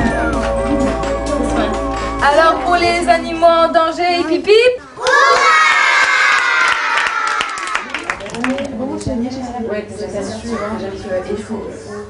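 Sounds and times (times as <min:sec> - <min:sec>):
hand claps: 0:00.3 - 0:02.1
children cheering and shouting: 0:05.0 - 0:07.8.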